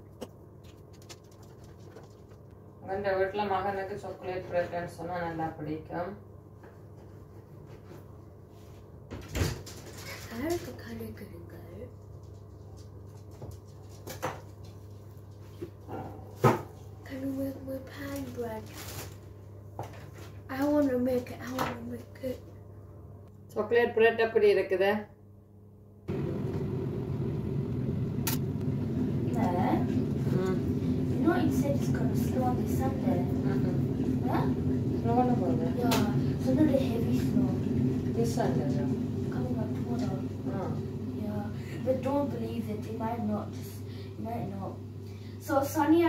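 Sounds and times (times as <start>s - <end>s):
low steady hum: 0.0s - 46.0s
machine running low rumble: 26.1s - 45.8s
sharp click: 28.2s - 28.4s.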